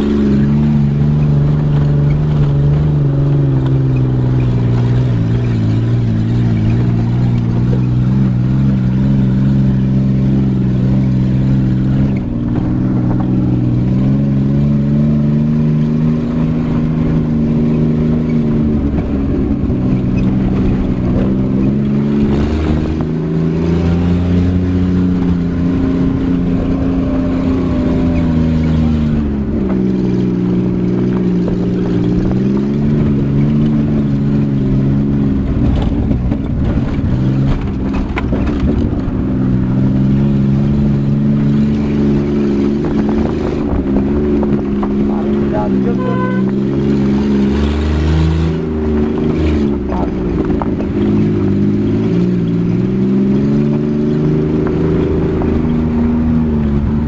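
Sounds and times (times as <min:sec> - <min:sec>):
vehicle engine revving: 0:00.0 - 0:57.0
knocks and rattles: 0:35.4 - 0:39.9.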